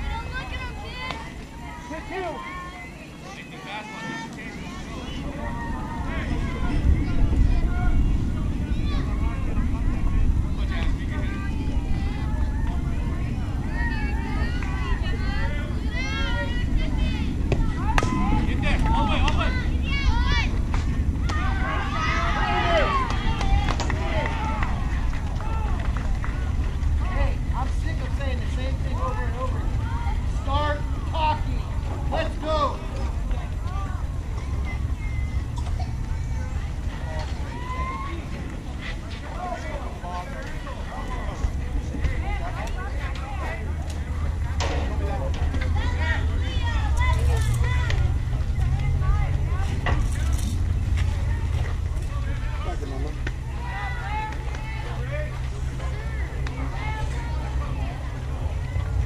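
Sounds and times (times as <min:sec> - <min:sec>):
girls calling and chattering: 0:00.0 - 0:59.0
low rumble: 0:04.6 - 0:59.0.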